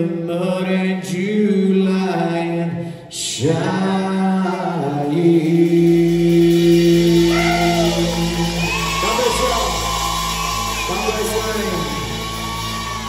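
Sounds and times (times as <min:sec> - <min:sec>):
country band playing: 0:04.2 - 0:13.0
crowd whooping: 0:07.0 - 0:13.0.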